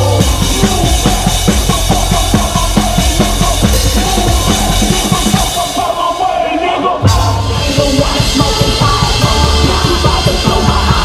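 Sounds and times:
bass guitar: 0.0s - 5.5s, 7.0s - 11.0s.

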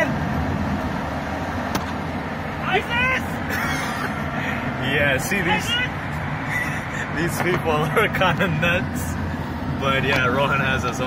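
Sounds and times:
car road and engine noise: 0.0s - 11.0s.

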